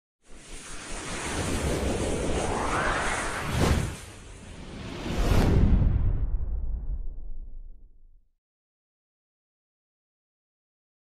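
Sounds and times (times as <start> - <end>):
whoosh sound effect: 0.4 - 6.7.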